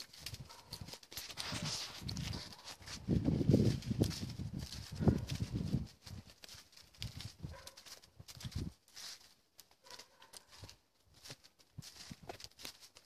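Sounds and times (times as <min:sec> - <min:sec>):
footsteps crunching through dry leaves: 0:00.0 - 0:13.0
undergrowth rustling: 0:00.0 - 0:13.0.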